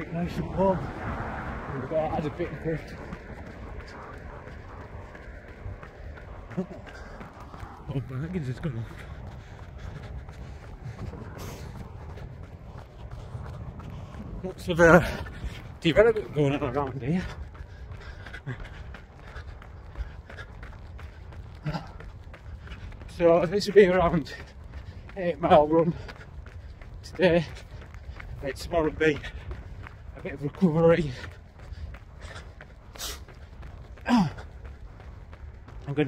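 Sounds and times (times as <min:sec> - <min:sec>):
running footfalls: 0:00.0 - 0:36.0
wind rumbling on microphone: 0:00.0 - 0:36.0.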